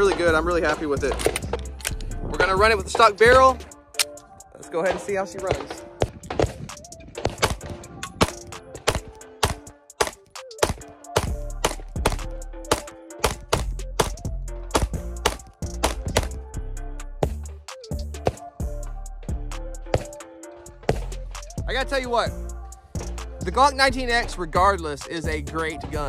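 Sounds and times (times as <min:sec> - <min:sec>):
background music with bass: 0:00.0 - 0:26.0
rapid pistol shots: 0:07.2 - 0:16.4.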